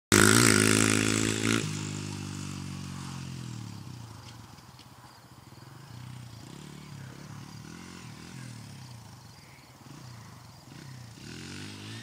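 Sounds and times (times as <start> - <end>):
dirt bike engine revving: 0.1 - 4.3, 5.9 - 12.0.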